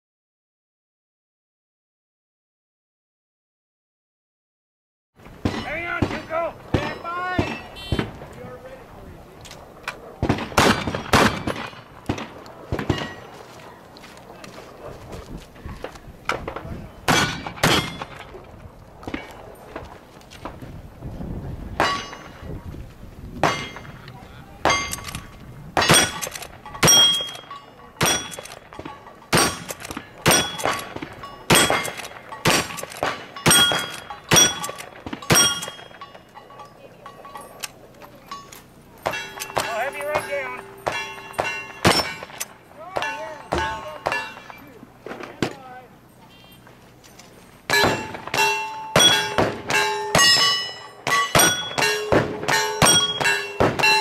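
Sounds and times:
steel targets ringing: 0:05.4 - 0:08.1, 0:12.8 - 0:13.4, 0:17.1 - 0:18.3, 0:21.8 - 0:22.4, 0:23.4 - 0:24.0, 0:24.6 - 0:44.8, 0:47.6 - 0:54.0
gunshots: 0:05.4 - 0:08.3, 0:10.2 - 0:13.3, 0:16.3 - 0:18.4, 0:28.0 - 0:36.0, 0:39.0 - 0:45.6, 0:47.7 - 0:54.0.

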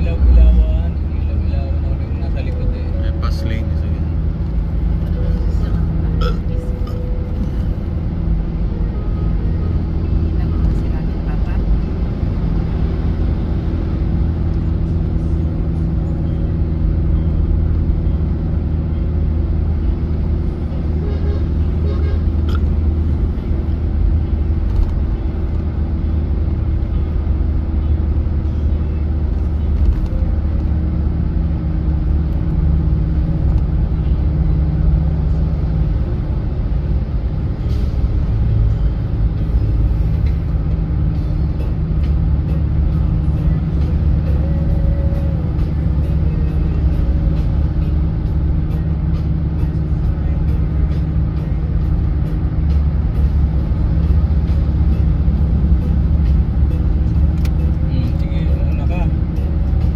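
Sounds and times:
car engine and road drone: 0:00.0 - 0:59.9.

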